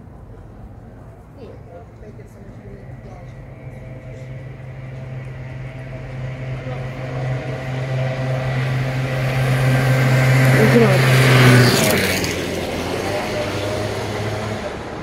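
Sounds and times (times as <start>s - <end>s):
car passing by: 2.2s - 15.0s.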